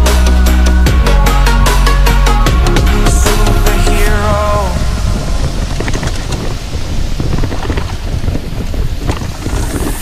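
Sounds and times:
wind buffeting microphone: 0:00.0 - 0:10.0
bike rattling and knocking: 0:05.5 - 0:10.0.

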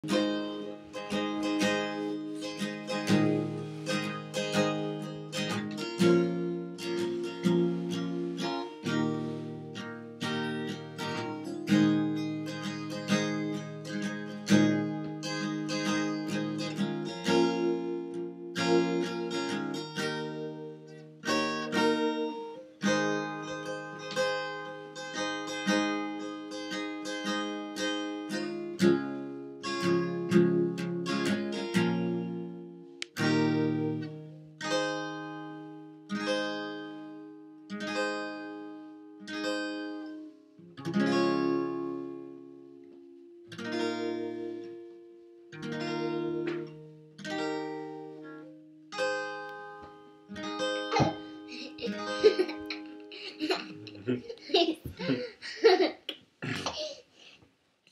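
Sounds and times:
acoustic guitar strumming chords: 0:00.0 - 0:54.3.

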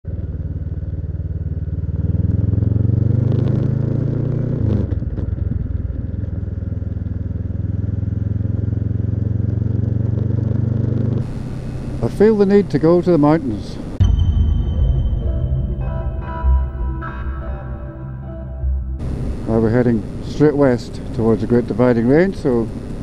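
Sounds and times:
motorcycle engine revving: 0:00.1 - 0:14.0, 0:18.8 - 0:23.0.

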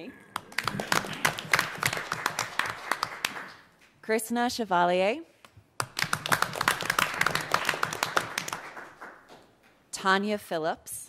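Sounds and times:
people clapping: 0:00.3 - 0:03.8, 0:05.8 - 0:09.5.

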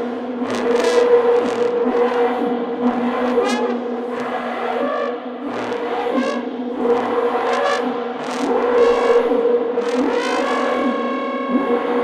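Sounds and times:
low trombone drone: 0:07.4 - 0:12.0.

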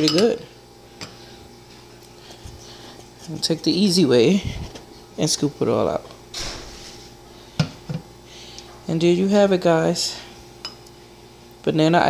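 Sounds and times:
spoon scraping: 0:02.1 - 0:04.0.

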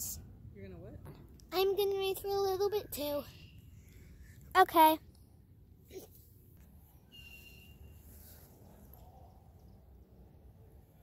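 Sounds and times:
short high bird call: 0:07.1 - 0:08.2.

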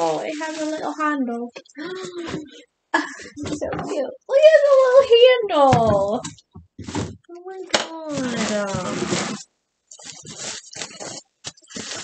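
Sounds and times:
plastic bag crinkling: 0:00.0 - 0:02.6, 0:08.0 - 0:12.0.

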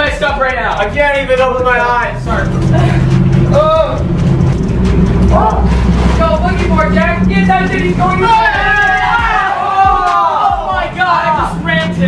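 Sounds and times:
truck engine and road drone: 0:00.7 - 0:09.3
people shouting: 0:05.2 - 0:05.9, 0:06.7 - 0:12.0.

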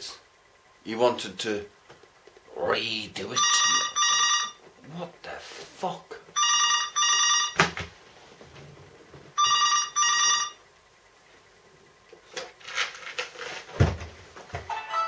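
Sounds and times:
mobile phone double ring: 0:03.4 - 0:04.6, 0:06.4 - 0:07.7, 0:09.4 - 0:10.6.

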